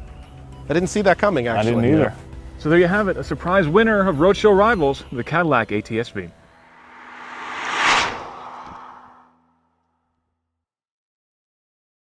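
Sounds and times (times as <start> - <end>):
whoosh: 6.7 - 9.3.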